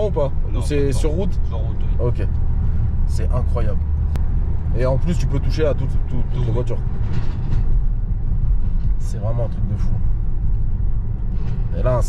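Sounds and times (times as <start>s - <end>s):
car engine running: 0.0s - 12.0s
road noise: 0.0s - 12.0s.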